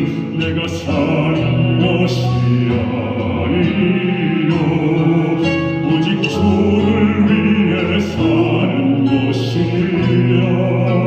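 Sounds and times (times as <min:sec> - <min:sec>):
instrumental music: 0:00.0 - 0:11.0
man singing into a microphone: 0:00.0 - 0:11.0.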